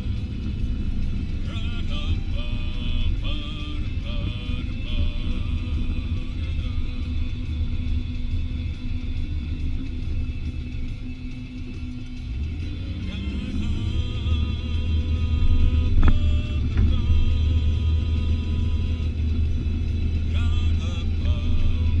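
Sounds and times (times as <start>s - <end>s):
car cabin rumble: 0.0s - 22.0s
music playing: 0.0s - 22.0s.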